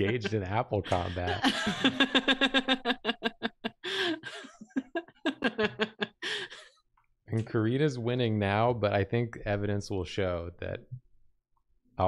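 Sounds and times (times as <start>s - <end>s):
person laughing: 0.0s - 6.6s.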